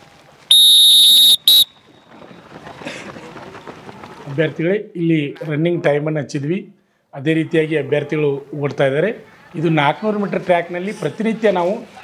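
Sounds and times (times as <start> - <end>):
shrill whistle blasts: 0.5 - 1.8.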